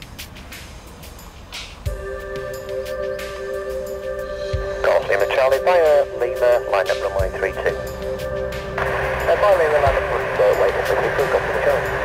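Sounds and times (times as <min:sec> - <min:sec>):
steady hum of tones: 0:00.0 - 0:12.0
unclear radio voice: 0:04.8 - 0:07.8, 0:09.3 - 0:11.9
radio hiss: 0:04.8 - 0:07.9, 0:08.8 - 0:12.0.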